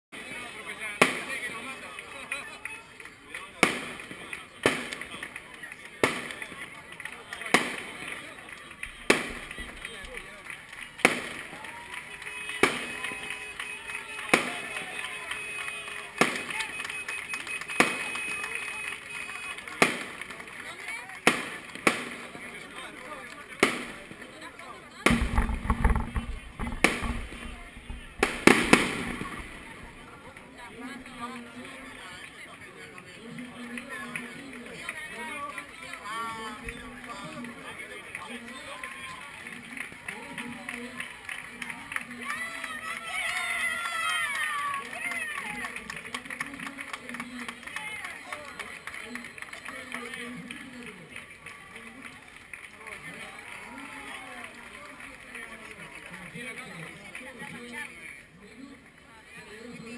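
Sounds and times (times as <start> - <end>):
murmur of crowd: 0.1 - 59.9
sharp bangs: 25.1 - 30.0.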